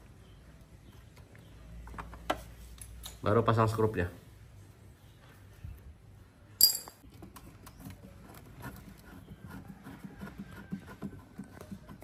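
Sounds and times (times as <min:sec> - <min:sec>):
sharp metallic clink: 0:06.6 - 0:07.0.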